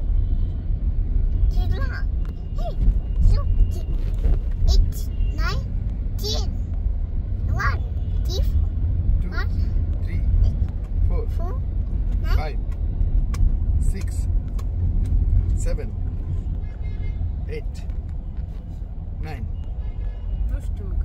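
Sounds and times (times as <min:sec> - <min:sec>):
road rumble inside vehicle: 0:00.0 - 0:21.0.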